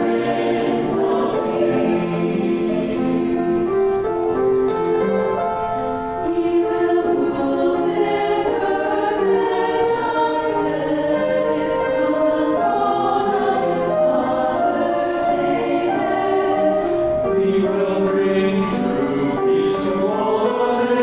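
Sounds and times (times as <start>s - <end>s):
church choir singing: 0.0s - 5.5s, 6.2s - 21.0s.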